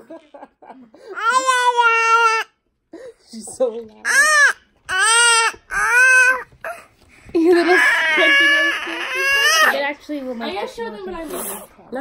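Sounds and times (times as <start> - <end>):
toddler squealing: 4.1 - 6.5, 7.6 - 9.8.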